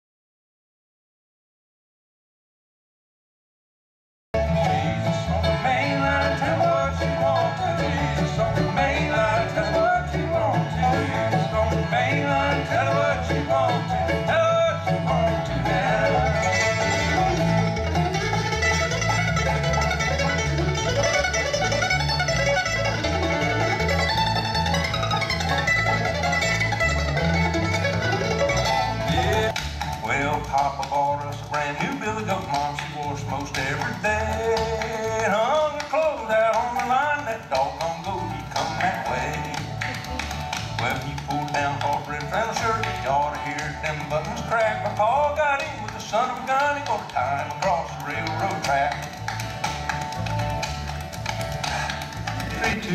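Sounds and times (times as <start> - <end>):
bluegrass string band playing: 4.4 - 52.9.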